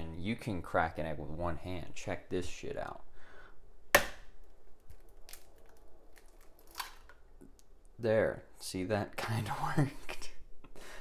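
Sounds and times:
eggshell crackling: 4.0s - 8.0s.

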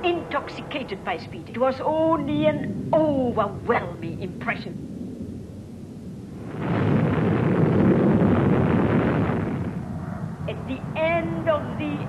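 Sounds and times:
rocket motor rushing rumble: 6.2s - 10.5s.

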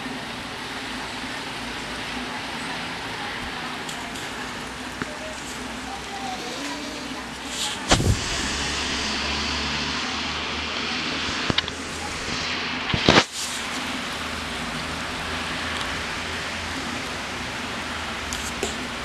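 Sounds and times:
car tyres hissing on wet road: 0.0s - 19.0s
rain on street: 0.0s - 19.0s.

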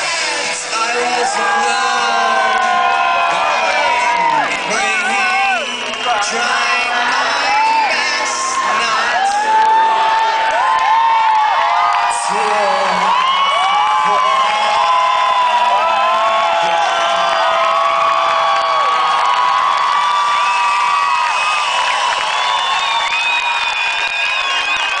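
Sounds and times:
concert crowd cheering: 0.0s - 25.0s.

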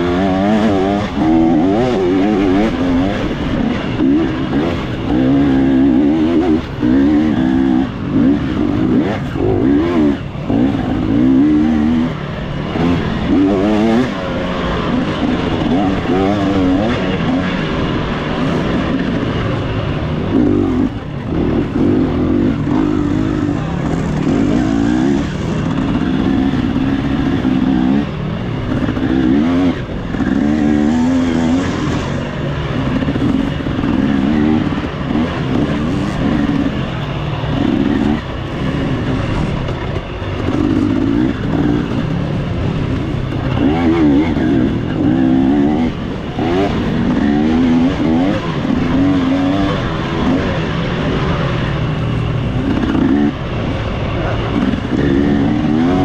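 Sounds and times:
dirt bike engine revving: 0.0s - 56.0s.

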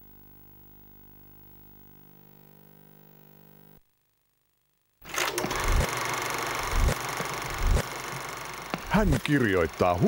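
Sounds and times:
mechanical clattering: 5.1s - 8.0s.

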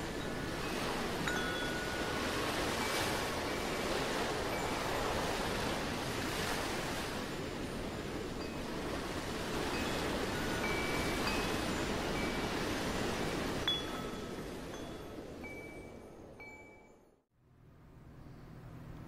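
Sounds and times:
ocean surf rushing: 0.0s - 15.6s
wind chime tones: 0.1s - 4.8s, 9.7s - 12.6s, 13.6s - 17.2s.

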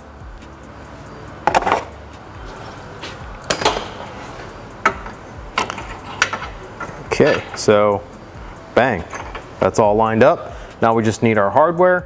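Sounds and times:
quiet background music: 0.0s - 12.0s.

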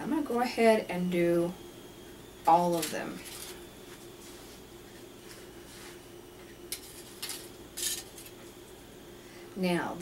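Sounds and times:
faint steady hum: 0.0s - 10.0s
foil rustling scrapes on tray: 2.5s - 4.7s.

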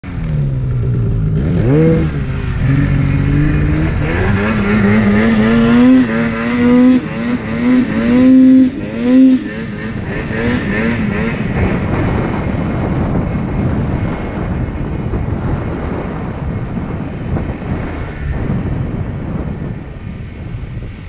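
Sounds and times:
snowmobile engine revving: 0.1s - 13.9s.

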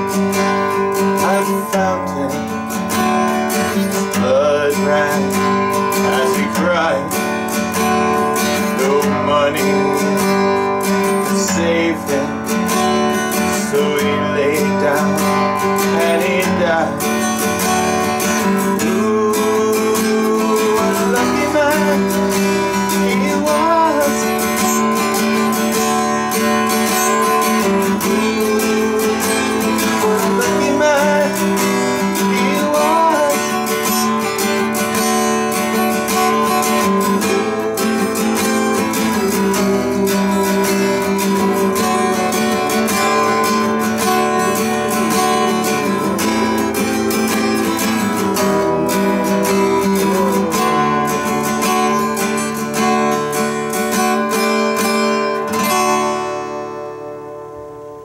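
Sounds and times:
man singing wordless melody: 0.0s - 55.4s
acoustic guitar strumming: 0.0s - 58.0s.

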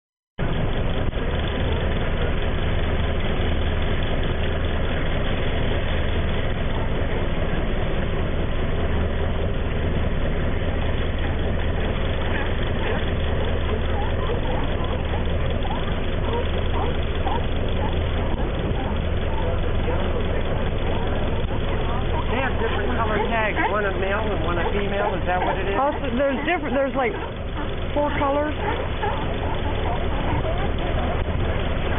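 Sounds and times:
boat engine idling: 0.4s - 31.9s.

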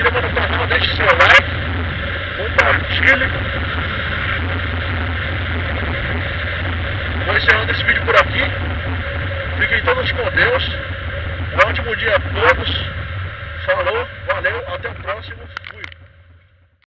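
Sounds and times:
wind noise on microphone: 0.0s - 16.6s
motorcycle engine running: 0.0s - 16.8s.

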